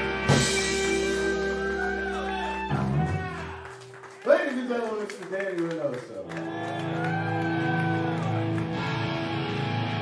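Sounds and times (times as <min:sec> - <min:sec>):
electric guitar and bass chord: 0:00.0 - 0:03.1, 0:08.2 - 0:10.0.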